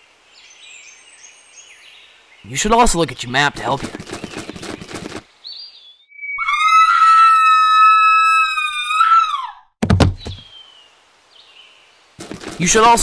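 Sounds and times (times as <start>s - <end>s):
high-pitched scream: 6.3s - 9.6s
heavy thud: 9.8s - 10.4s.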